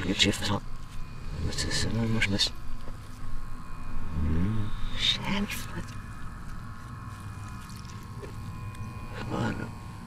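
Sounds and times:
low electrical hum: 0.0s - 10.0s
thin high tone: 0.0s - 10.0s.

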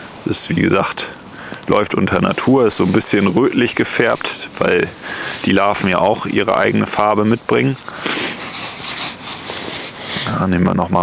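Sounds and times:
newspaper rustling: 1.7s - 10.8s.

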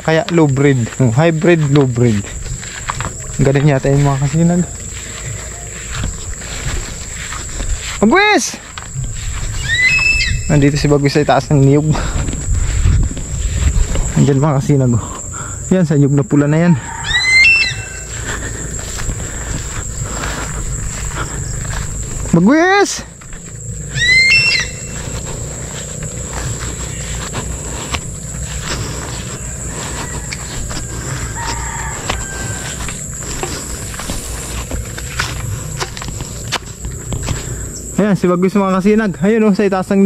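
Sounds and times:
bird calling: 0.0s - 39.6s
footsteps through grass and brush: 0.0s - 40.0s
high-pitched whine: 0.0s - 40.0s
outdoor background: 0.0s - 40.0s
low rumble: 8.7s - 15.7s, 17.7s - 22.4s.

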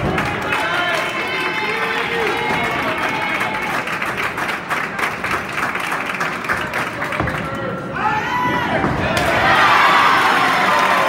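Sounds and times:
people clapping: 0.0s - 7.8s, 9.1s - 11.0s
overlapping voices: 0.0s - 11.0s.

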